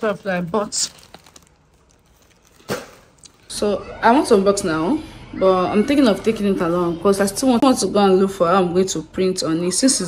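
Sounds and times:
plastic mailer bag crinkling: 0.0s - 3.4s
plastic bag rustle: 0.0s - 3.5s.

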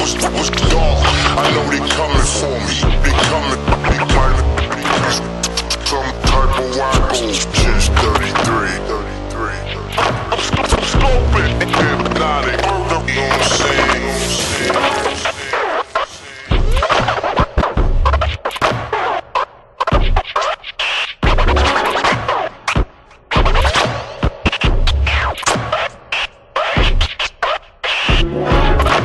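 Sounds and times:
sustained low bass line: 0.0s - 15.0s
vinyl record scratches: 0.0s - 29.0s.

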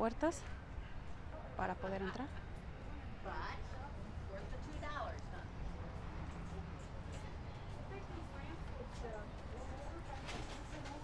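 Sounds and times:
distant conversation: 0.0s - 11.0s.

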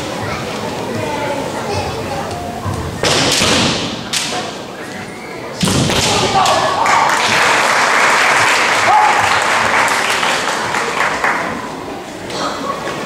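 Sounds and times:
people shouting: 6.0s - 7.2s, 8.8s - 9.3s.

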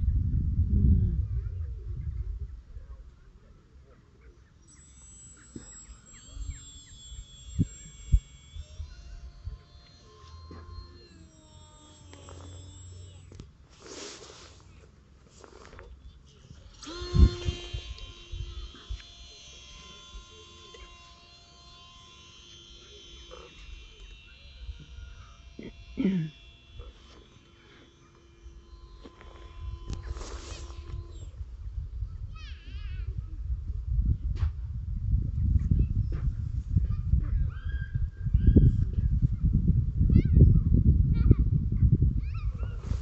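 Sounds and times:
wind rumble on microphone: 0.0s - 3.3s, 16.9s - 18.8s, 29.5s - 43.0s
electric motor and propeller whine: 4.7s - 32.1s.

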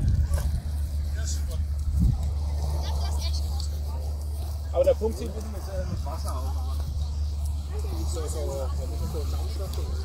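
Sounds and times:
faint voices: 0.0s - 10.0s
steady low rumble: 0.0s - 10.0s.

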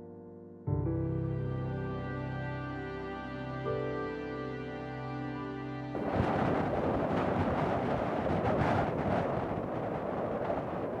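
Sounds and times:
rushing wind: 6.0s - 11.0s.

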